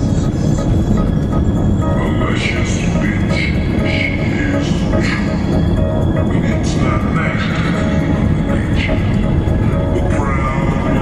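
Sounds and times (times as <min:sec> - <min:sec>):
engine and tyre rumble: 0:00.0 - 0:11.0.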